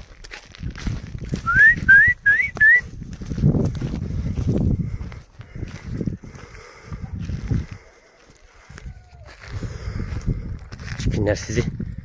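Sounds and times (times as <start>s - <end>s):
person whistling rising notes: 1.4s - 2.9s.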